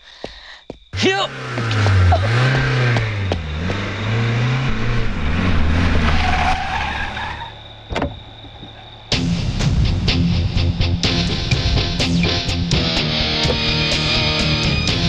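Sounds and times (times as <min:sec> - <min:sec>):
tyre noise: 0:00.7 - 0:09.1, 0:12.8 - 0:14.1
car engine revving unevenly: 0:01.0 - 0:09.6
guitar music: 0:09.1 - 0:15.0.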